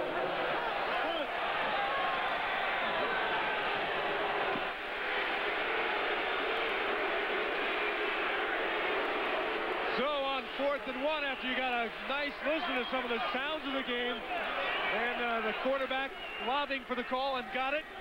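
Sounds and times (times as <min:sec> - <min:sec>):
stadium crowd noise: 0:00.0 - 0:18.0.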